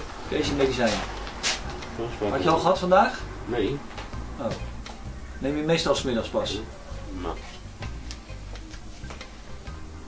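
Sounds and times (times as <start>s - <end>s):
low steady bass: 0.0s - 10.0s
music with ticking beat: 0.5s - 10.0s.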